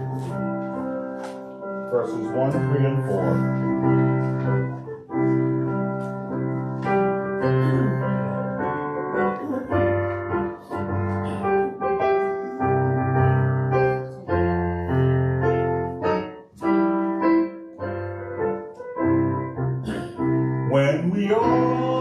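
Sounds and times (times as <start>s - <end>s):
piano playing slow hymn chords: 0.0s - 22.0s.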